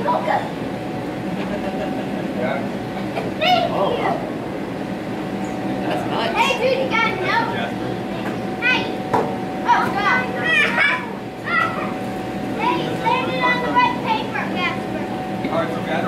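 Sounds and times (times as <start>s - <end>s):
steady hum: 0.0s - 16.0s
children chattering and calling: 2.4s - 4.4s, 5.6s - 15.2s.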